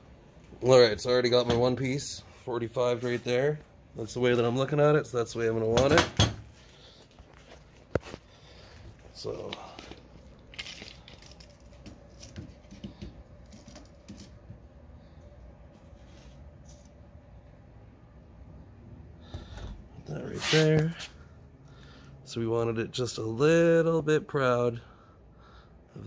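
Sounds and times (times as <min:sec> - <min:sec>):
small clicks and rustles of handling: 0:09.0 - 0:14.6.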